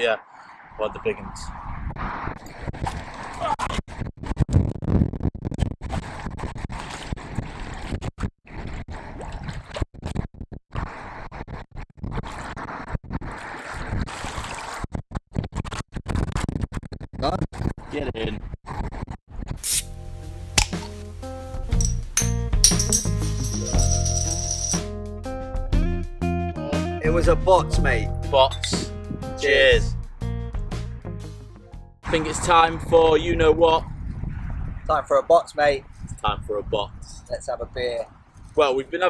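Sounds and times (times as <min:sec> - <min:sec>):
music with shaker rattle: 0:21.6 - 0:24.9.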